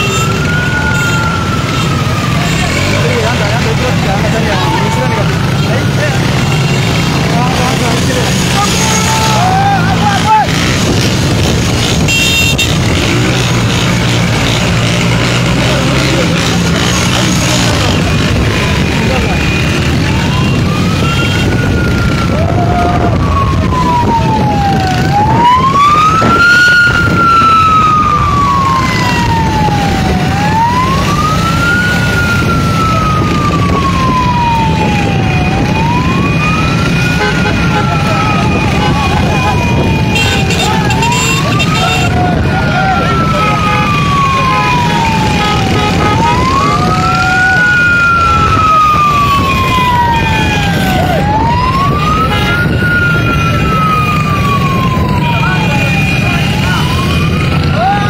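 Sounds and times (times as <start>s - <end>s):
vehicle siren wailing: 0.0s - 58.0s.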